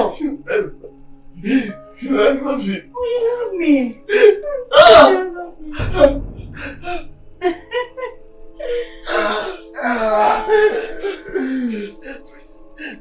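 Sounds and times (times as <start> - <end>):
woman crying and sobbing: 0.0 - 6.2, 7.4 - 13.0
low thud: 5.8 - 8.2.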